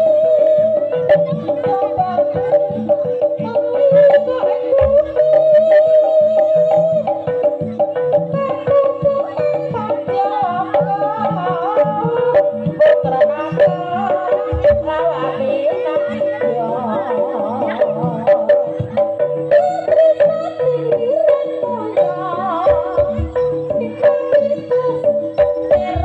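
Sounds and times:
low rhythmic accompaniment: 0.0 - 26.0
wavering melody line: 0.0 - 26.0.

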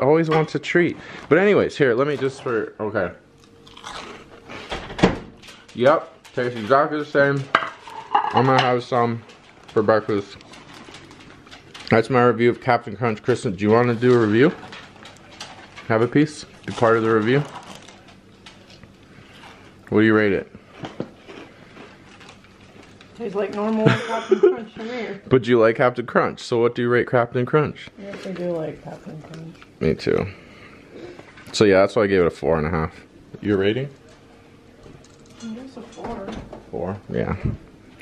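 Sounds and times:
cereal crunching: 3.4 - 4.3, 20.7 - 23.8
man chewing crunchy cereal: 3.4 - 4.7, 9.2 - 12.0, 13.7 - 19.9, 20.5 - 23.3.

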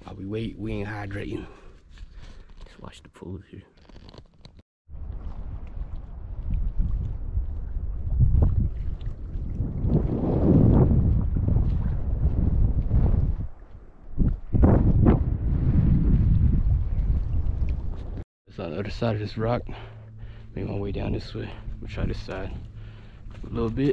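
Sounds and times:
wind buffeting microphone: 4.9 - 18.2.

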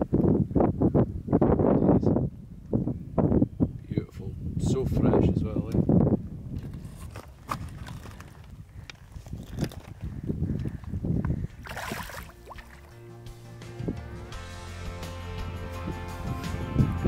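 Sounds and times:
fish splash: 11.6 - 13.0
seawater sloshing: 11.6 - 13.0
background music: 12.4 - 17.0.

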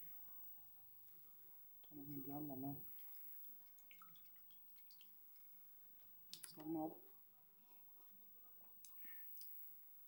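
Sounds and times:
faint drips: 2.7 - 6.9, 8.0 - 9.7.

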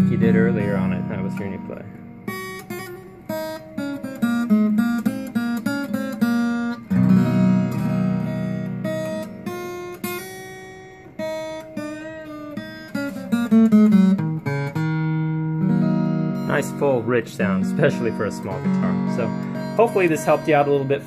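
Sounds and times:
acoustic guitar riff: 0.0 - 21.0.

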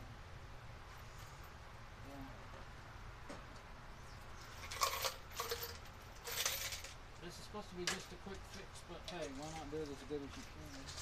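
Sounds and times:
metal hardware rattling in a pan: 4.6 - 6.9.

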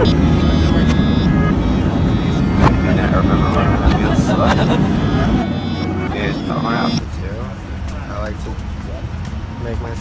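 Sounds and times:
airliner cabin rumble: 0.0 - 10.0.

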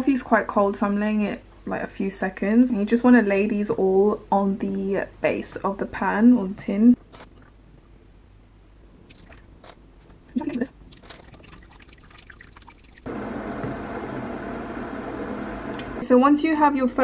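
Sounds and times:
faint drips: 10.3 - 13.1.

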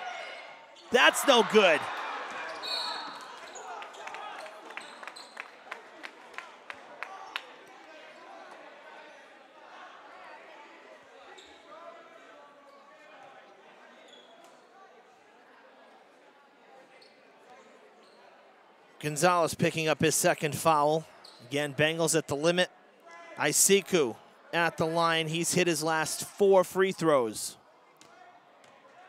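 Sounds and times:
gym crowd noise: 0.0 - 29.0
referee's whistle: 0.9 - 1.9, 2.5 - 3.3.

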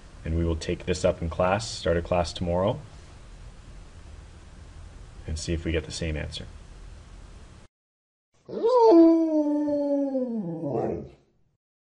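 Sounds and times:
dog howling: 8.5 - 11.2.

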